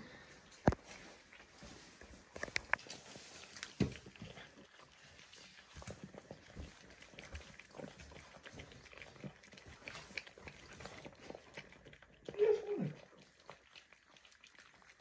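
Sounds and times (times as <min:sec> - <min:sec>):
puppies chewing and smacking: 0:00.2 - 0:15.0.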